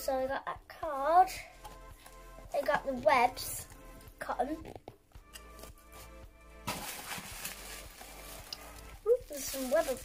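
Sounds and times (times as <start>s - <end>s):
soft background music: 0.0s - 10.0s
cotton rustling over cardboard: 6.0s - 10.0s.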